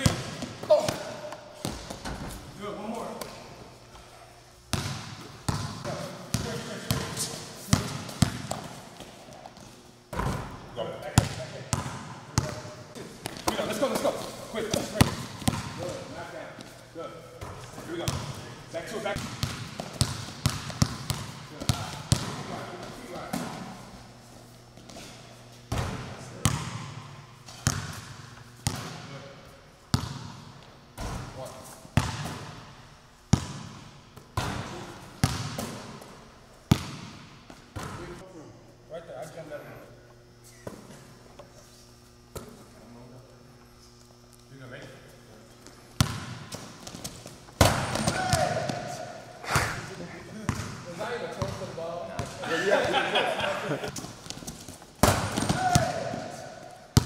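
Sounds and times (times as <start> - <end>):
basketball bouncing on gym floor: 0.0 - 2.4, 4.7 - 16.7, 17.3 - 18.5, 19.2 - 23.8, 25.7 - 29.2, 29.9 - 31.3, 32.0 - 32.7, 33.3 - 38.2, 46.0 - 49.0, 50.4 - 53.0, 53.9 - 57.0.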